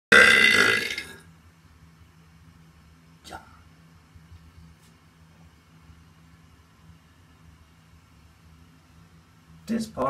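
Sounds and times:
man burping loudly: 0:00.1 - 0:01.2.

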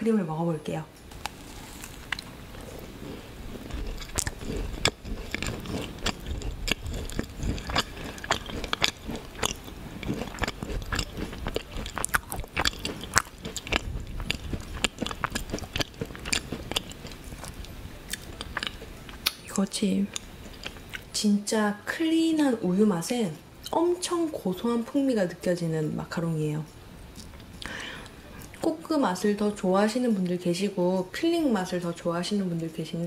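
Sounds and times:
chewing crunches and mouth clicks: 0:01.1 - 0:19.5, 0:20.1 - 0:21.1, 0:27.1 - 0:27.7.

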